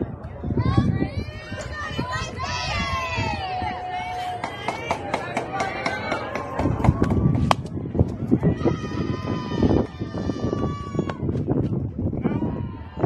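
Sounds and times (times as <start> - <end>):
people shouting and cheering: 0.0 - 13.0.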